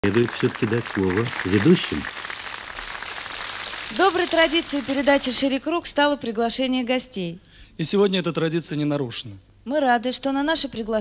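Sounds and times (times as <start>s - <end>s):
audience applauding: 0.0s - 5.5s.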